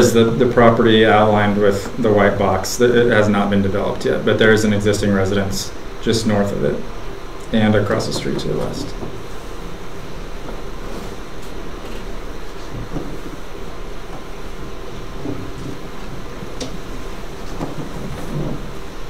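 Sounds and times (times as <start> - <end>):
faint hum: 0.0 - 19.0
low rumbling room noise: 0.0 - 19.0.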